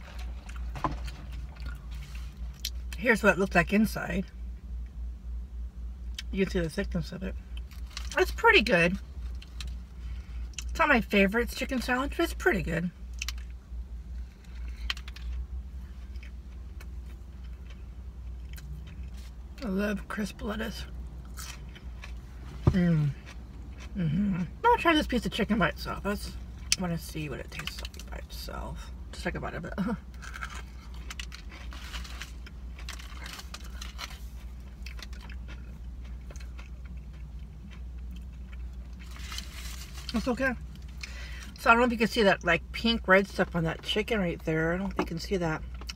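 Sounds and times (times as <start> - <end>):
steady low hum: 0.0 - 45.9
person chewing crunchy food: 13.1 - 19.4, 21.2 - 24.6, 30.1 - 41.6.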